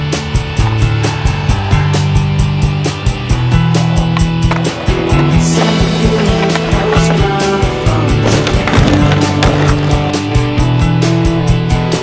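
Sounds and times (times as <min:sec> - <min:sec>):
skateboard wheels rolling on pavement: 0:00.0 - 0:12.0
skateboard knocking: 0:04.1 - 0:10.4.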